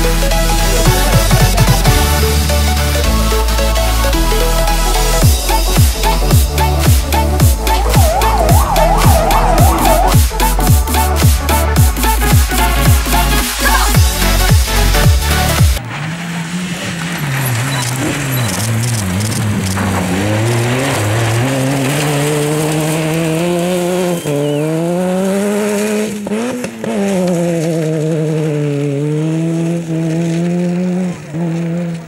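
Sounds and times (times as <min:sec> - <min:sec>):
electronic dance music: 0:00.0 - 0:15.8
car engine revving hard: 0:05.2 - 0:32.0.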